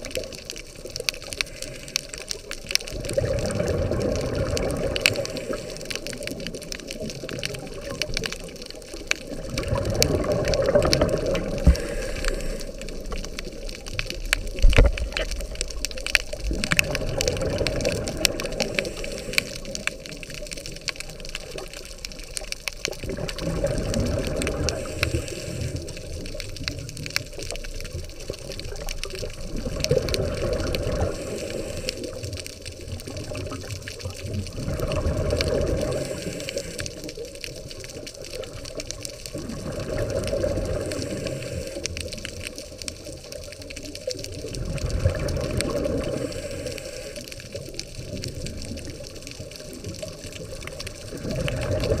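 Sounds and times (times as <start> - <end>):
diver's regulator bubbling underwater: 0.0 - 52.0.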